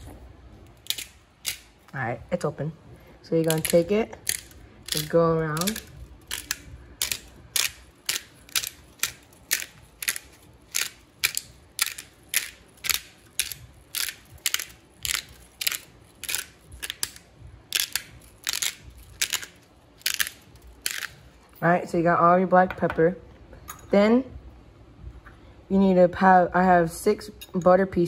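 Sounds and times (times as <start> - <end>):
pepper grinder crunching peppercorns: 0.6 - 2.0, 3.3 - 21.3.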